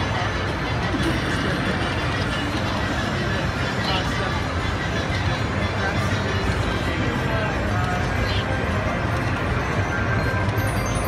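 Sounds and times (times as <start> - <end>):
crowd babble: 0.0 - 11.0
slot machine music and jingles: 8.8 - 11.0.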